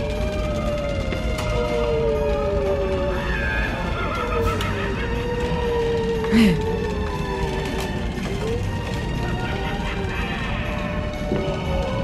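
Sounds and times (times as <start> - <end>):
spooky sound effects: 0.0 - 12.0.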